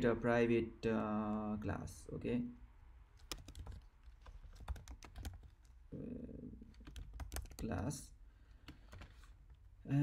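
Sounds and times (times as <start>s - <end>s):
typing on a computer keyboard: 3.2s - 5.8s, 6.7s - 7.7s, 8.6s - 9.2s.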